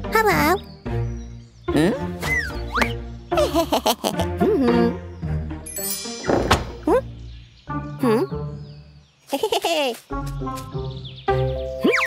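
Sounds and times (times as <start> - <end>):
soft background music: 0.0 - 9.2, 10.1 - 12.0
cartoon thunk: 6.2 - 6.9.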